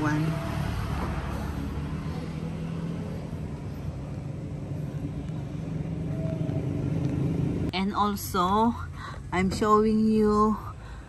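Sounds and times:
vehicle engine running: 0:00.0 - 0:10.9.

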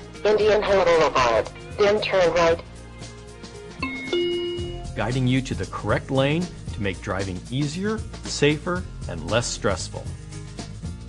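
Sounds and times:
quiet background music: 0:00.0 - 0:11.0
two-note electronic chime: 0:03.8 - 0:05.2.

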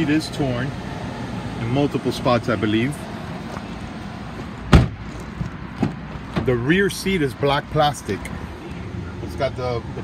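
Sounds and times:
car door clunk: 0:04.7 - 0:05.1.

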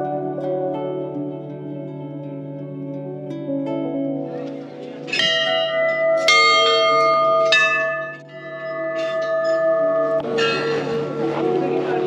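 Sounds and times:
brass bells ringing: 0:05.1 - 0:12.0.

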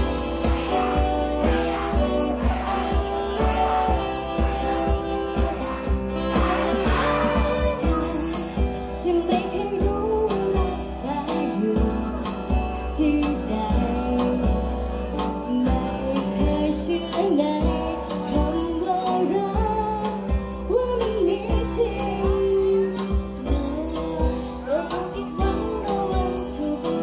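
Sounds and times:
women singing pop song: 0:00.0 - 0:14.7, 0:15.4 - 0:27.0
amplified instrumental accompaniment: 0:00.0 - 0:27.0.

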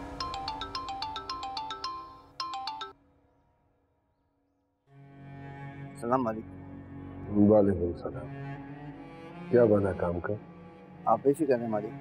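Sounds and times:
mobile phone ringtone: 0:00.0 - 0:03.0.

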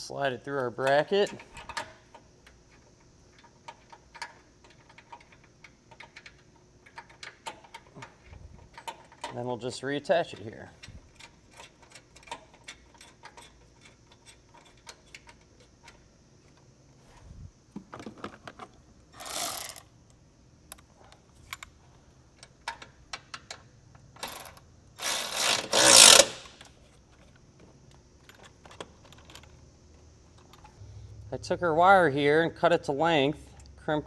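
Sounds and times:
hand ratchet clicking: 0:03.3 - 0:09.4, 0:10.3 - 0:16.0, 0:19.2 - 0:19.8, 0:24.2 - 0:26.7
cordless power tool running: 0:25.0 - 0:26.4.

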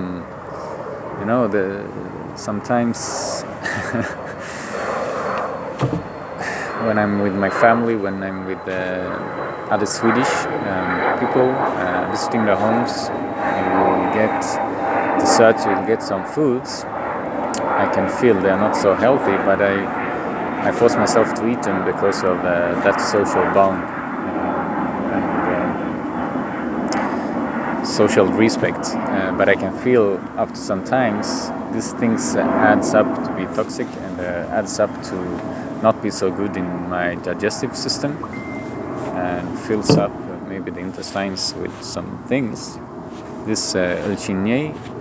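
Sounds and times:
airplane engine rumble: 0:00.0 - 0:45.0
man laughing breathily: 0:03.5 - 0:05.3, 0:06.4 - 0:06.8.

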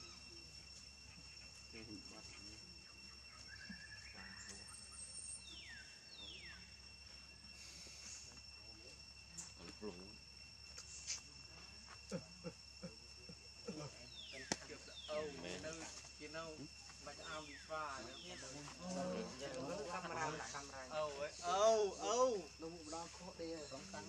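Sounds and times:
insect trill: 0:00.0 - 0:24.0.

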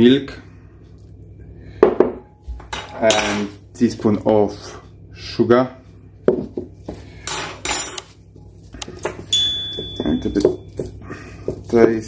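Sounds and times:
high bell-like ding: 0:09.3 - 0:10.4
teaspoon clinking against glass bowl: 0:09.3 - 0:10.7.

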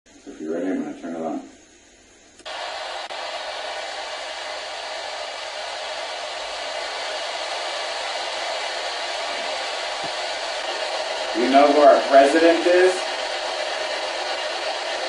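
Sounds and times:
radio static hiss: 0:00.1 - 0:15.0.

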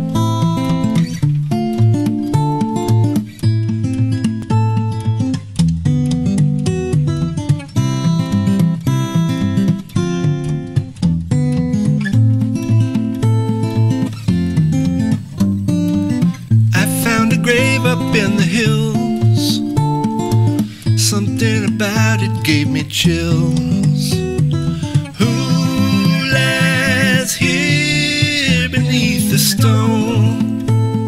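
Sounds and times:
acoustic guitar strumming: 0:00.0 - 0:31.0.

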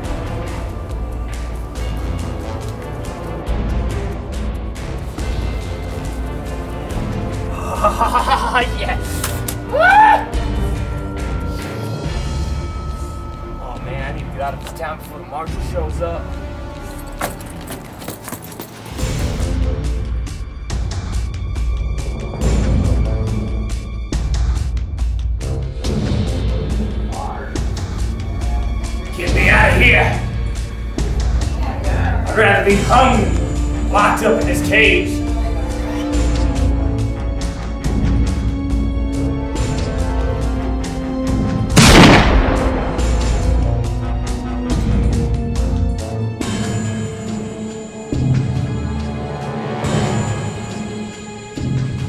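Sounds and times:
soundtrack music: 0:00.0 - 0:52.0
metal jangling and clattering: 0:16.8 - 0:19.0
loud bang: 0:41.8 - 0:43.6.

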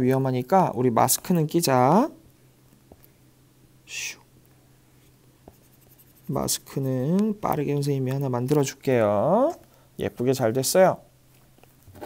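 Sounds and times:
scratchy pen stroke: 0:05.0 - 0:07.1.

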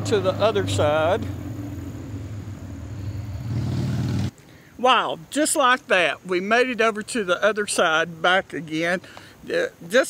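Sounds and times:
steady low rumble: 0:00.0 - 0:04.3.

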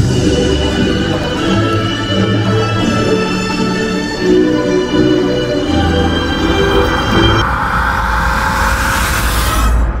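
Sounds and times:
music melody: 0:00.0 - 0:07.4
rushing rumbling sound effect: 0:06.3 - 0:10.0.

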